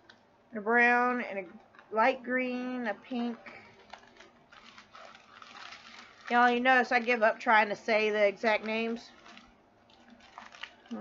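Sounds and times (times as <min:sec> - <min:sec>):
plastic bags rustling and clicking: 0:03.1 - 0:11.0.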